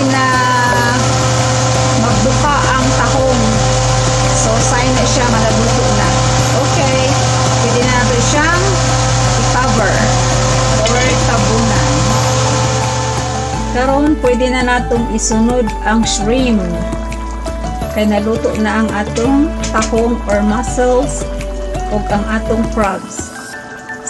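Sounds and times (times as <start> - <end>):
loud motor-like whir: 0.0 - 22.8.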